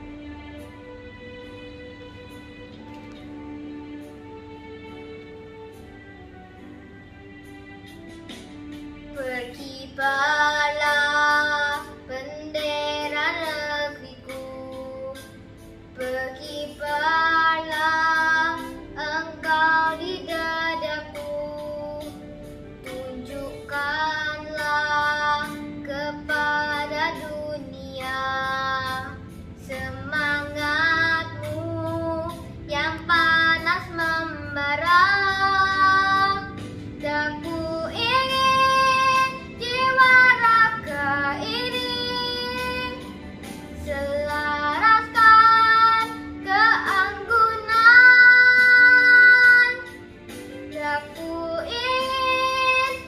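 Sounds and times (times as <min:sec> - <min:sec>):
girl singing: 0:09.1 - 0:53.0.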